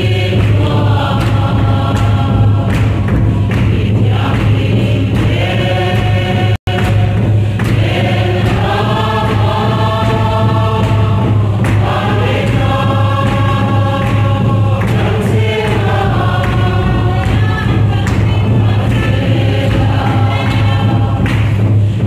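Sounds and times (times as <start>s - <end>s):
group singing a hymn: 0.0s - 22.0s
steady low hum: 0.0s - 22.0s.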